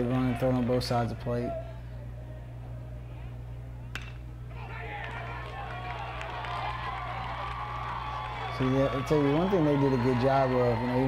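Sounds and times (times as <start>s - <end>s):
crowd cheering: 0.0s - 2.5s, 4.0s - 11.0s
steady low hum: 0.0s - 11.0s
metal bat hitting baseball: 3.9s - 4.2s.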